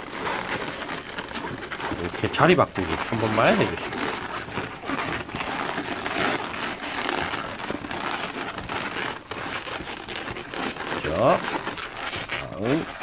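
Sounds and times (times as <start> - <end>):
balloons rubbing and crinkling: 0.0 - 13.0.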